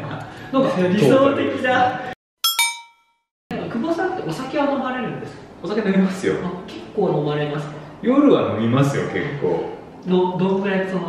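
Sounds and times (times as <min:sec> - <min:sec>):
bell-like chime: 0:02.4 - 0:03.2.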